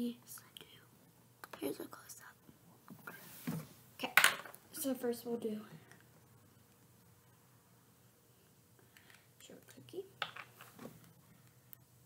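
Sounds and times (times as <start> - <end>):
faint whispering: 0.0 - 1.0, 1.6 - 2.4
low room hum: 0.0 - 12.0.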